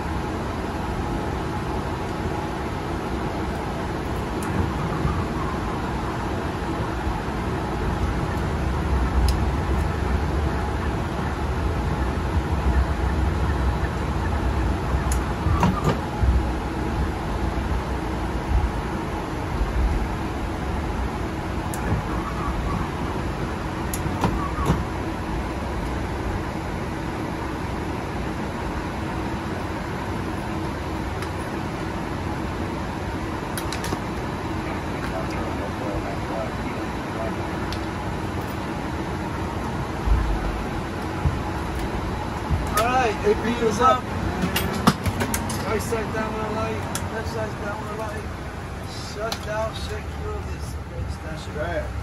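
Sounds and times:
hum of aircraft engines: 0:00.0 - 0:52.0
low rumble of wheels rolling: 0:00.0 - 0:52.0.

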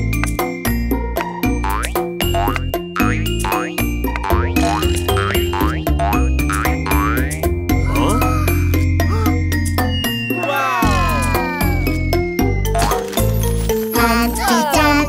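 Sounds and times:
cartoon background music: 0:00.0 - 0:15.0.

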